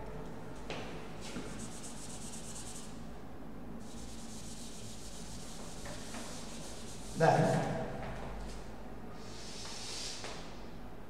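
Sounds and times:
duster scrubbing chalkboard: 1.2s - 3.0s, 3.8s - 7.8s.

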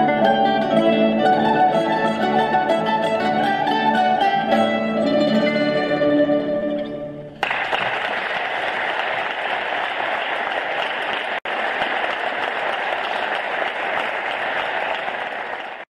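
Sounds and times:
plucked-string orchestra chord: 0.0s - 7.4s
audience applause: 7.4s - 15.9s.

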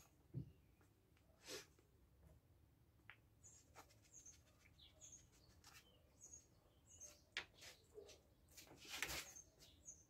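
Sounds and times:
faint high bird chirps: 3.4s - 10.0s
soft rustle: 3.4s - 10.0s.

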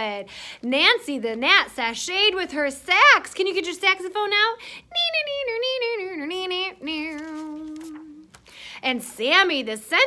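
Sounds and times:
woman singing saxophone imitation: 1.0s - 10.0s.

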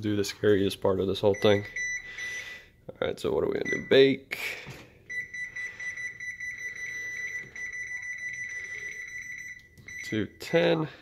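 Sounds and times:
rapid high oven beeps: 1.2s - 2.8s, 3.6s - 4.2s, 5.1s - 10.8s.

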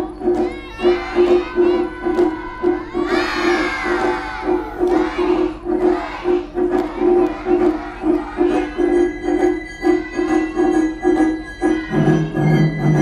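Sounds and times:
children shouting: 0.0s - 12.6s.

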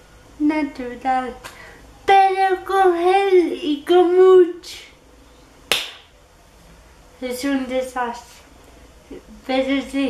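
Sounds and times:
finger snap: 5.7s - 6.1s.

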